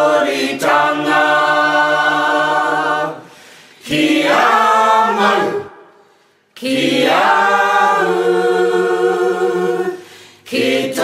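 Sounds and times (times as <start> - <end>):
voices singing unaccompanied: 0.0 - 11.0.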